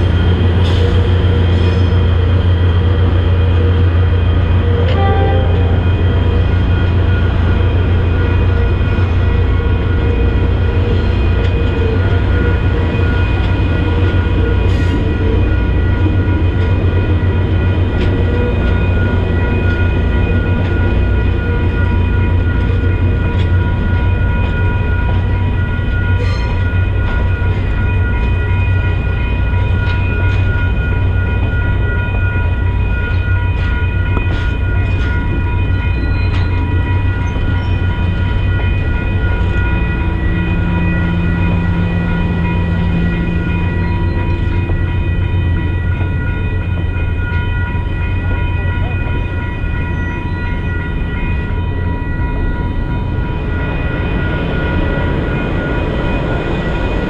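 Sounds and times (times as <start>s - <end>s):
crossing bell ringing: 0.0s - 57.0s
train rumbling past: 0.0s - 57.0s.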